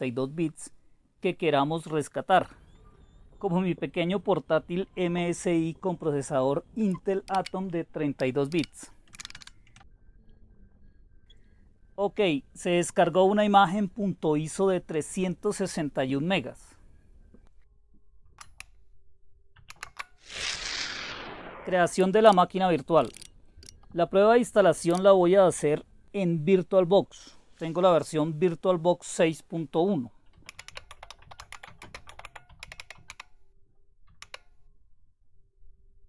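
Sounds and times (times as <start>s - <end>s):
keyboard typing: 5.8s - 9.9s, 24.7s - 25.1s, 30.3s - 33.3s, 34.1s - 34.6s
computer mouse clicks: 6.8s - 9.9s, 18.4s - 18.8s, 19.6s - 20.2s, 22.3s - 24.0s, 24.8s - 25.1s, 30.4s - 33.4s, 34.1s - 34.6s
whoosh falling in pitch: 20.2s - 22.0s.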